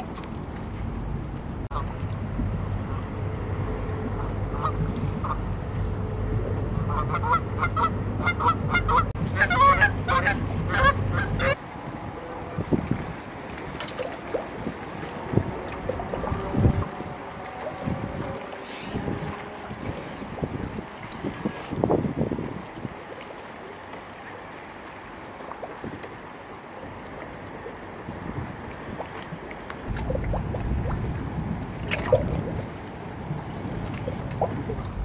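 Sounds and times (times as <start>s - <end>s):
low steady hum: 0.0s - 21.6s, 22.5s - 35.0s
geese honking: 6.9s - 11.6s.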